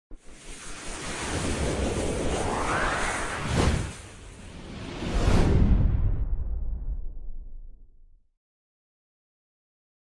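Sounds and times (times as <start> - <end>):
wind-like whoosh: 0.1 - 7.9.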